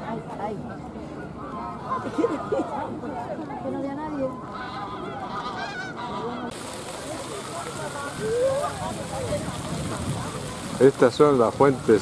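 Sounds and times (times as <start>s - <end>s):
waterfowl honking: 4.5s - 8.2s
fountain splashing into pond: 6.5s - 12.0s.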